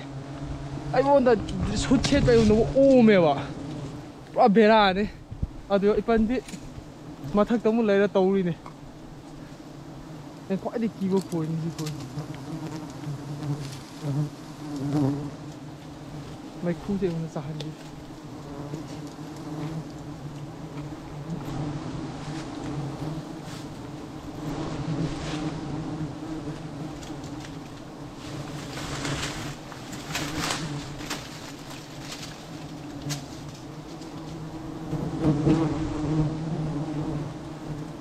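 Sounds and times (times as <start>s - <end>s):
bees buzzing: 0.0s - 38.0s.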